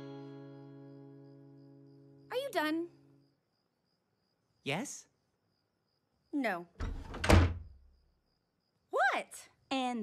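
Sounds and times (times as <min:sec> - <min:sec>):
door slamming shut: 0:06.8 - 0:07.8.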